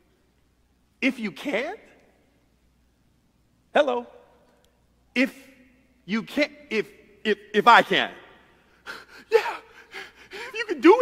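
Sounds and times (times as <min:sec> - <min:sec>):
man gasping: 0:08.7 - 0:10.7.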